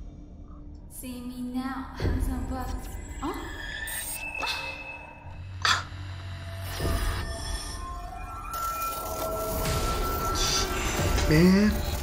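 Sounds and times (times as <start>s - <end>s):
dark electronic music: 2.1s - 12.0s.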